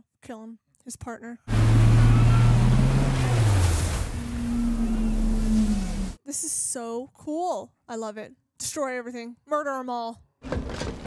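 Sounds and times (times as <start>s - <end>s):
deep sliding tone: 1.5s - 6.2s
surging ocean water: 1.5s - 6.2s.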